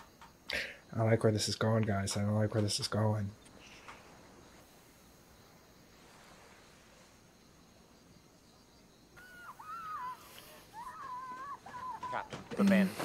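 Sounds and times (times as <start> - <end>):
faint hiss: 0.0 - 13.0
woman screaming: 9.2 - 12.5.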